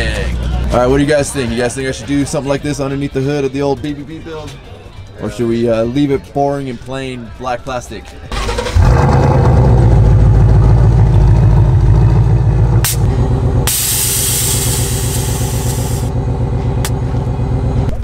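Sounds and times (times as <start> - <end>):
car engine starting and idling: 8.3 - 18.0
loud hiss: 13.7 - 16.1.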